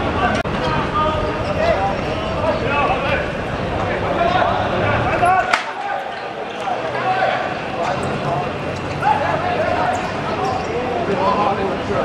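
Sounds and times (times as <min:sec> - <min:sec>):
background noise: 0:00.0 - 0:12.0
men calling out: 0:00.7 - 0:11.2.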